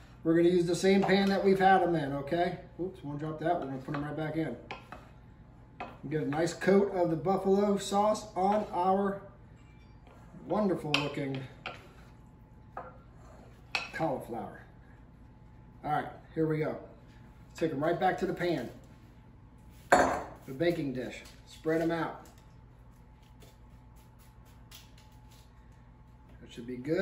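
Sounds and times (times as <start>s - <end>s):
low steady hum: 0.0s - 27.0s.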